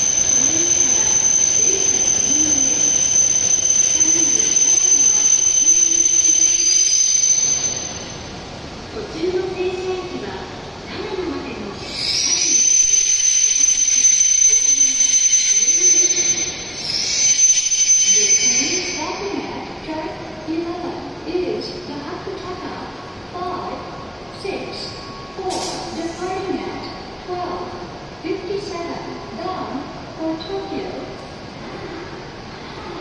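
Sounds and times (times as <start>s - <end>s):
train stopping: 0.0s - 20.5s, 23.9s - 29.4s
air hissing from train brakes: 25.4s - 26.5s.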